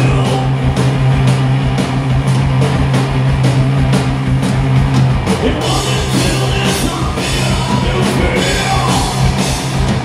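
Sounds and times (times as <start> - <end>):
drum and cymbal strokes: 0.0 - 10.0
heavy rock band playing: 0.0 - 10.0.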